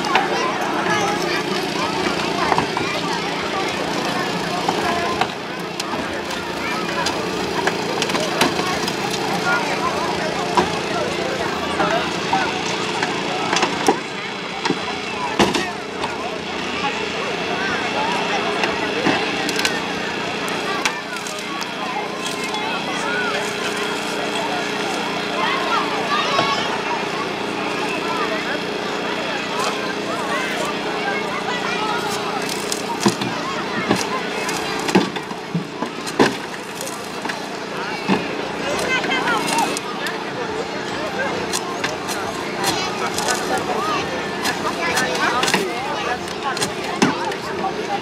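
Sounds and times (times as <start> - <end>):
crowd chatter: 0.0 - 48.0
hydraulic tool humming: 17.9 - 47.9.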